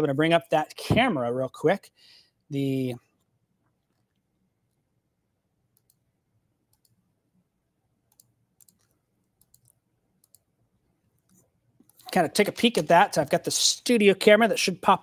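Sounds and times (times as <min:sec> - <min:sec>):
faint computer clicks: 0:08.1 - 0:10.5.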